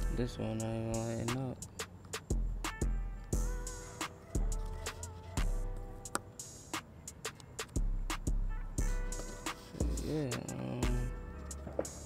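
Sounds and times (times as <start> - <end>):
hip-hop instrumental: 0.0 - 12.0.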